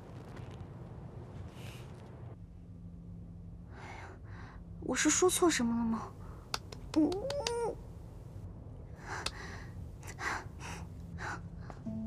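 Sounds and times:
faint clicks: 0:06.4 - 0:07.7, 0:09.1 - 0:09.5.

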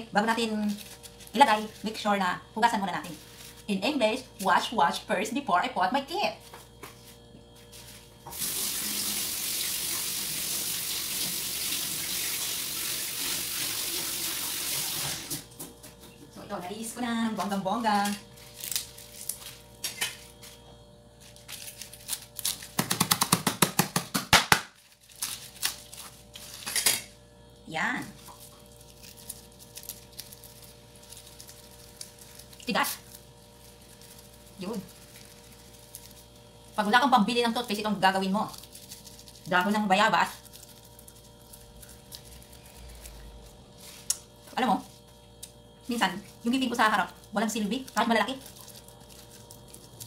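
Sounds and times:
woman speaking: 0:00.0 - 0:06.5, 0:16.3 - 0:18.3, 0:27.7 - 0:28.2, 0:32.6 - 0:33.0, 0:34.6 - 0:35.0, 0:36.8 - 0:38.6, 0:39.4 - 0:40.4, 0:44.5 - 0:45.0, 0:45.8 - 0:48.5
leaves being chewed: 0:00.6 - 0:02.0, 0:18.3 - 0:19.7, 0:21.2 - 0:22.8, 0:24.8 - 0:26.6, 0:28.2 - 0:36.7, 0:38.4 - 0:45.6, 0:46.2 - 0:50.0.

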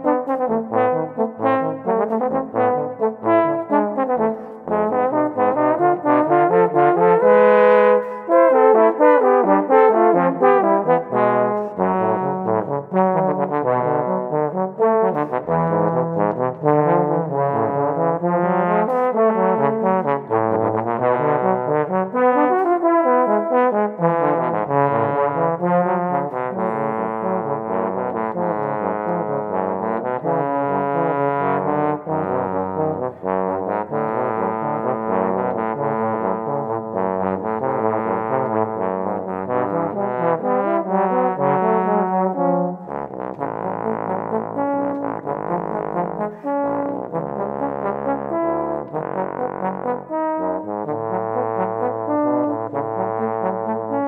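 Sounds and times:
bass trombones playing tango: 0:00.0 - 0:54.0.

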